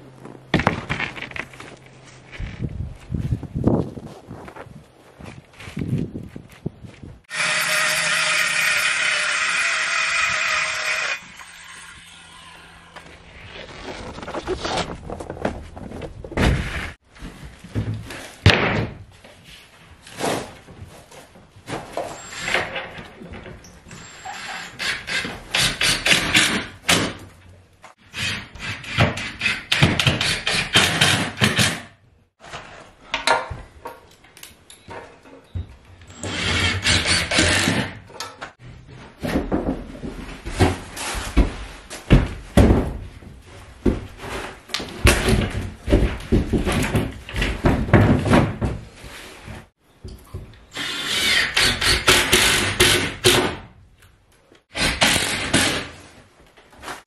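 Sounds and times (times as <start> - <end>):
boards thumping and knocking: 0.5 - 1.8, 39.2 - 49.0
boards scraping and rubbing: 13.0 - 17.0.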